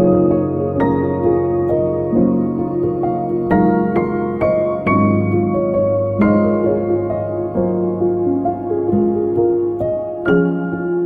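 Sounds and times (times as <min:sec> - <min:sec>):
slow piano improvisation: 0:00.0 - 0:11.0.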